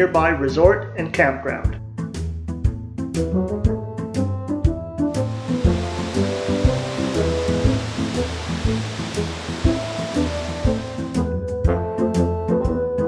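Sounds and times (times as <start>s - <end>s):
instrumental music: 5.1s - 11.3s
waterfall rushing: 5.2s - 11.2s.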